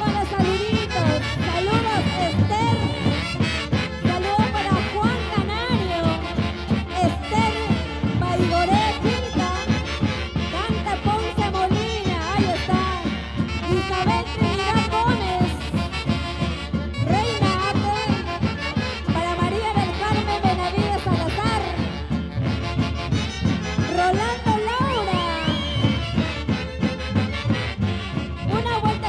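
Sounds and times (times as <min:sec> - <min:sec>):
steady band beat: 0:00.0 - 0:29.0
clarinet and saxophones melody: 0:00.1 - 0:29.0.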